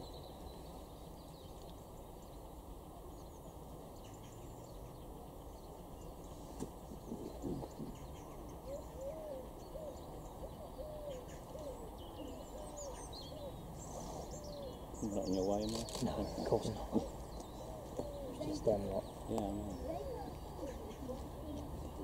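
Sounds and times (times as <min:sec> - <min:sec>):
bird hooting: 0:06.9 - 0:15.5, 0:16.1 - 0:22.0.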